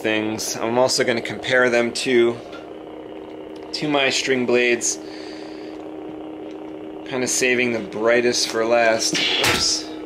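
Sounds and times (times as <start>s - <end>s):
faint high whine: 0.0s - 10.0s
low electrical hum: 0.0s - 10.0s.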